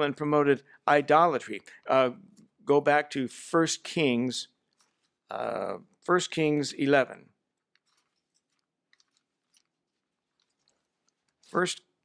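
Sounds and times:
thin pages being leafed through: 0:07.7 - 0:11.6.

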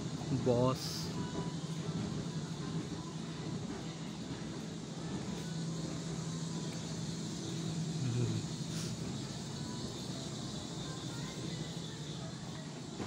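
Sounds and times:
faint indistinct noises: 0:00.0 - 0:13.0
low mechanical hum: 0:00.0 - 0:13.0.

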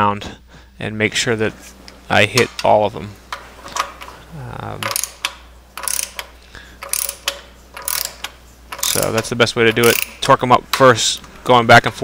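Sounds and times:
torque wrench ratchet clicking: 0:04.8 - 0:10.3.

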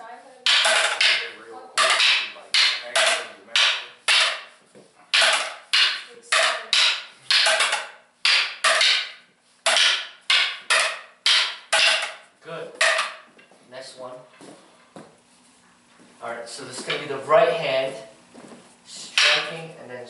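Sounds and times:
training sticks clacking: 0:00.5 - 0:12.2, 0:12.8 - 0:13.4, 0:19.1 - 0:19.6.

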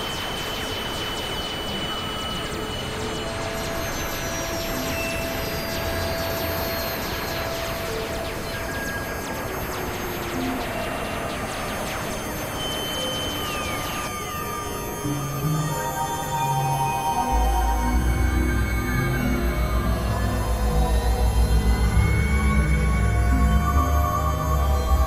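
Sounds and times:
experimental electronic noise music: 0:00.0 - 0:25.0.

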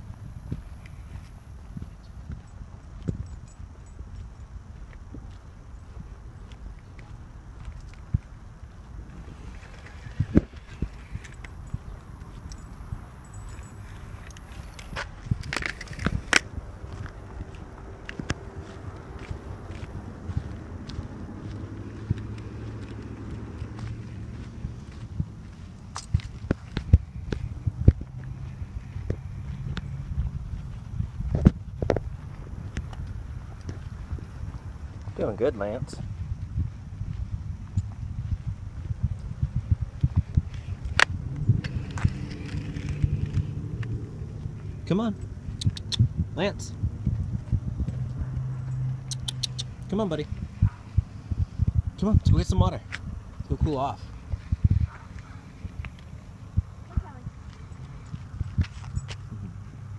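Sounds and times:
footsteps on concrete: 0:00.0 - 0:48.6, 0:52.7 - 0:59.6
low rumble: 0:00.0 - 0:59.9
rustle: 0:09.1 - 0:12.6, 0:40.5 - 0:44.8.

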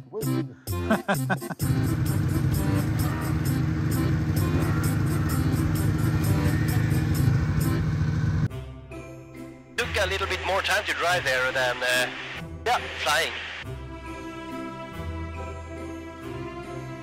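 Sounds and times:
laughter: 0:00.7 - 0:01.7
snowmobile engine running: 0:01.6 - 0:08.5.

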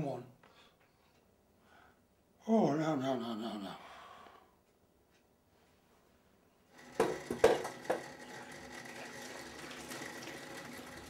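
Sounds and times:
saucepan knocking on metal sink: 0:06.9 - 0:08.1.

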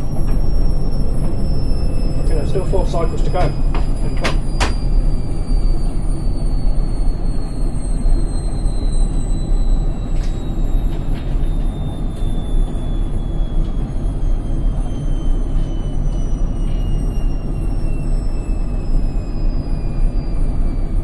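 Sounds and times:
washing machine drum rumble: 0:00.0 - 0:05.9
motor whine falling in pitch: 0:00.0 - 0:21.0.

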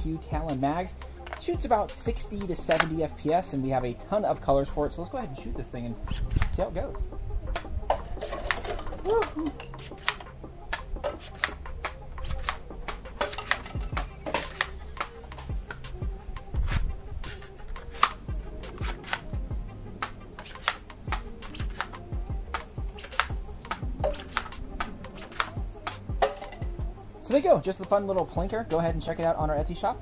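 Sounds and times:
background music: 0:00.0 - 0:30.0
darts striking plastic cups: 0:01.2 - 0:03.0, 0:07.6 - 0:16.0, 0:16.7 - 0:19.3, 0:20.0 - 0:26.7
dart blaster clicking: 0:02.6 - 0:03.0, 0:09.7 - 0:15.9, 0:17.2 - 0:19.3, 0:20.0 - 0:26.0.

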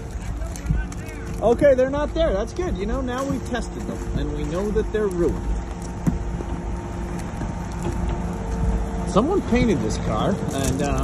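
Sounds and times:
faint crunches: 0:00.0 - 0:11.0
vehicle engine running: 0:00.0 - 0:11.0.

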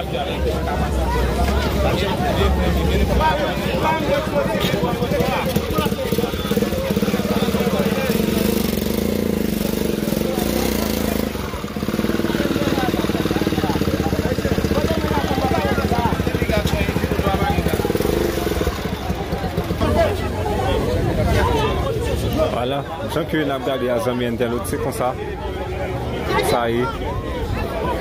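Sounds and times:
crowd voices: 0:00.0 - 0:28.0
small motorcycle engine running: 0:00.6 - 0:22.5.

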